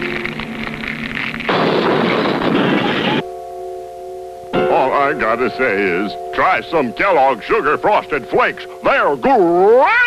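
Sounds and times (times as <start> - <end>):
cartoon explosion blast: 1.5 - 3.2
light background music: 2.5 - 10.0.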